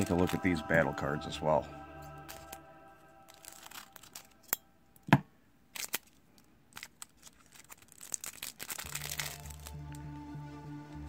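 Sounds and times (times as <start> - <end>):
plastic wrapper crinkling: 0.0 - 0.8, 2.2 - 2.6, 3.3 - 4.6, 5.7 - 10.1.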